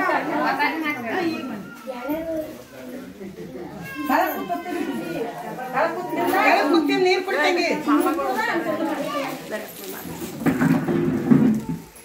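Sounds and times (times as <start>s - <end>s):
women talking: 3.9s - 10.5s.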